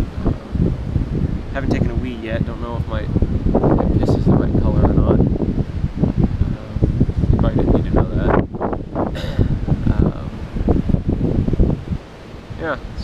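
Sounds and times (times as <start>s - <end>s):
wind rumbling on microphone: 0.0s - 13.0s
person speaking: 1.6s - 3.0s.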